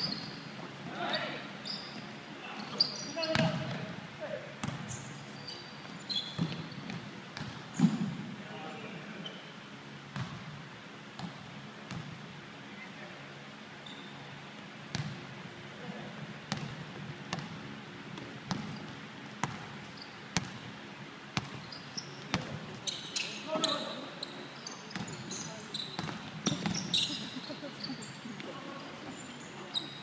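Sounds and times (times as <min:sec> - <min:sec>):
sneakers squeaking on court: 0:00.0 - 0:03.9, 0:04.6 - 0:08.2, 0:13.8 - 0:14.2, 0:18.5 - 0:20.7, 0:21.4 - 0:30.0.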